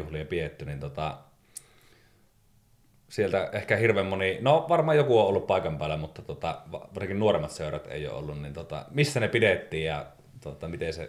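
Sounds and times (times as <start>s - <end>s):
faint click: 1.5s - 1.8s.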